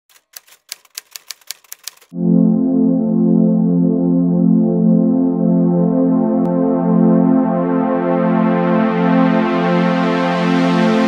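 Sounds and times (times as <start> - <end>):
typewriter key clicks: 0.1 - 2.1.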